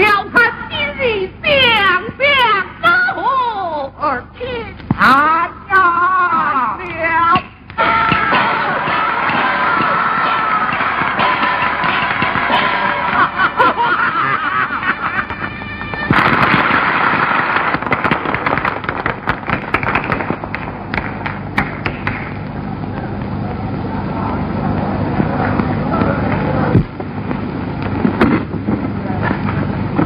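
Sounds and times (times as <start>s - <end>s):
crowd noise: 0.0s - 30.0s
chinese opera music with voices: 7.8s - 13.1s
audience applause: 7.8s - 22.4s.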